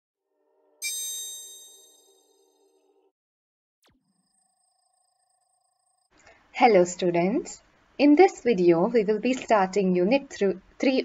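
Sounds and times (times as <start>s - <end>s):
bright chime ringing: 0.8s - 2.8s.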